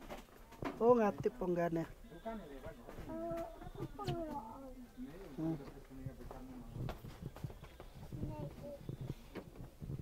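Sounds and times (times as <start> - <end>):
small child's wordless voice: 3.0 - 4.8, 7.9 - 9.6.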